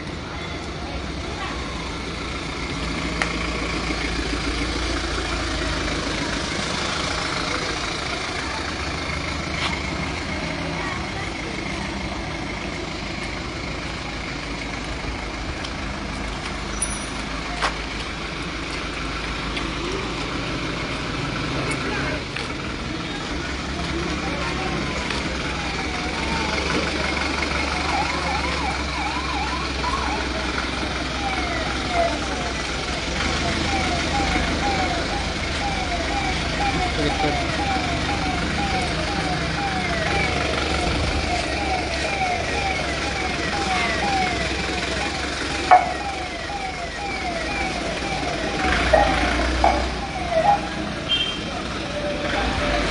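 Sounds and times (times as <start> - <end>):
diesel engine idling: 0.0 - 52.9
ambulance siren wailing: 24.0 - 52.9.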